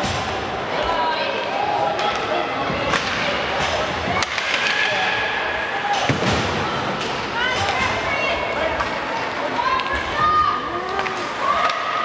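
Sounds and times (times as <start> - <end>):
hockey sticks and puck knocks: 2.0 - 5.3, 5.9 - 8.1, 10.9 - 12.0.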